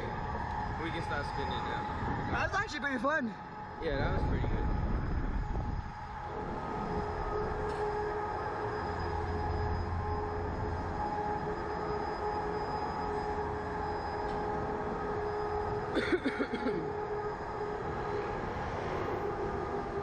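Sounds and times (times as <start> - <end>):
ride machinery hum and whine: 0.0 - 20.0.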